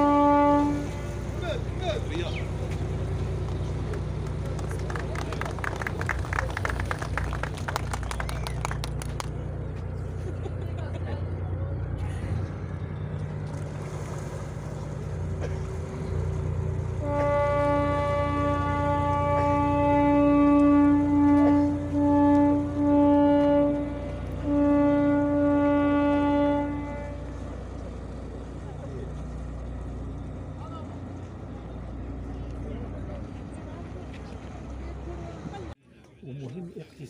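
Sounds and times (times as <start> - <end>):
tugboat horn blast: 0.0 - 6.3, 14.8 - 28.6
boat diesel engine drone: 0.0 - 36.6.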